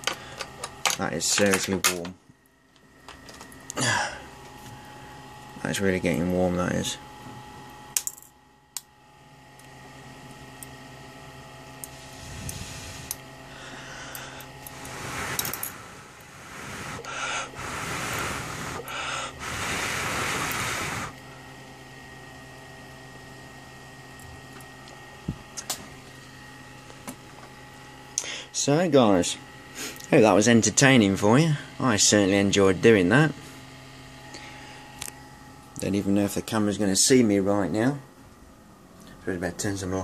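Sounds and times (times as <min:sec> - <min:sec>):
steady electrical hum: 0:00.0 - 0:40.0
high-voltage discharge hissing: 0:11.8 - 0:13.2, 0:14.7 - 0:21.1.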